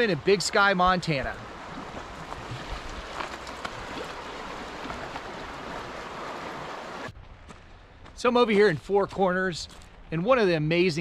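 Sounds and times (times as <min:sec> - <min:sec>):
river water rushing over rocks: 0:01.4 - 0:07.1.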